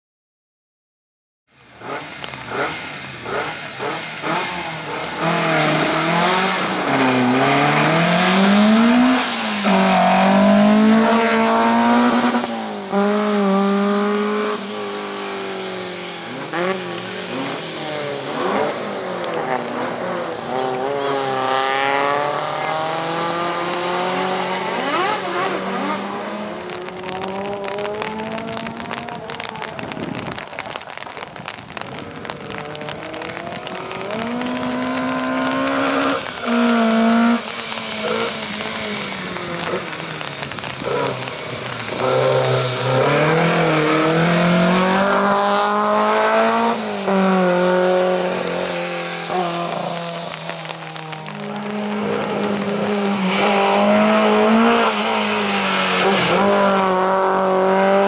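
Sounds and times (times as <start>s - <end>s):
race car engine revving hard: 1.8s - 29.5s, 32.8s - 58.0s.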